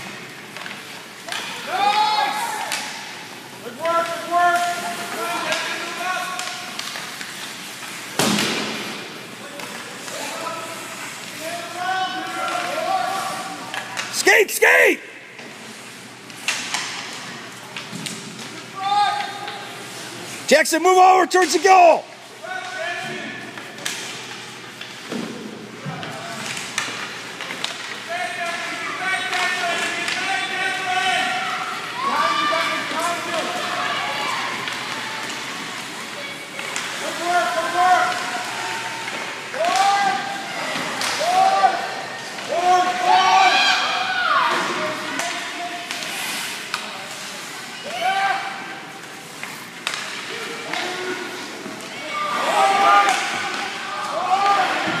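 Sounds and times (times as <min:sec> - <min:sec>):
spectators shouting: 0:14.1 - 0:15.2, 0:37.1 - 0:44.6, 0:51.9 - 0:55.0.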